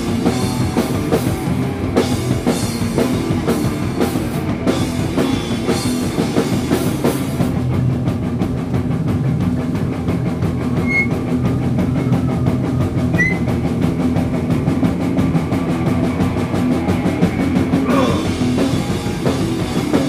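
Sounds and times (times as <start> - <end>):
fast drum beat: 0.0 - 20.0
punk band playing live: 0.0 - 20.0.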